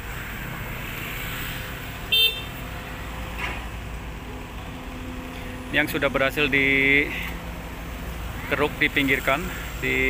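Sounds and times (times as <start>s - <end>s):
engine and traffic rumble: 0.0s - 10.0s
vehicle horn toot: 2.1s - 2.5s.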